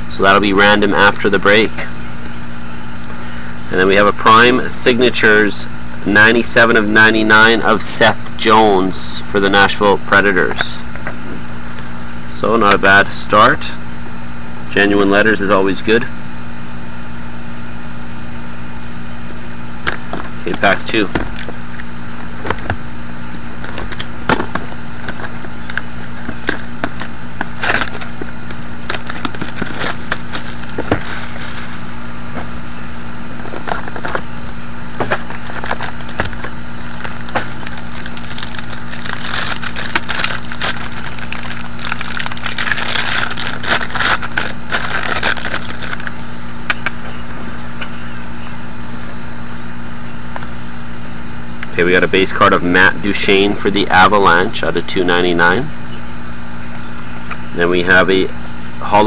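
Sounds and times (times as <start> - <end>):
steady background hum: 0.0 - 59.0
foil wrapper crinkling: 20.5 - 22.7, 23.6 - 32.0, 35.0 - 46.3.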